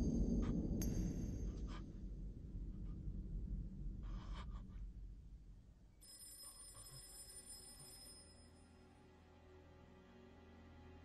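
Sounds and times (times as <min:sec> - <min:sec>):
low rumble: 0:00.0 - 0:06.0
high-pitched thin ringing tones: 0:06.0 - 0:09.0.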